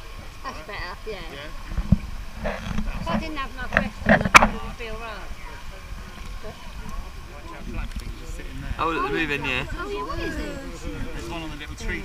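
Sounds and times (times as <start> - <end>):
indistinct voices talking: 2.4 - 12.0.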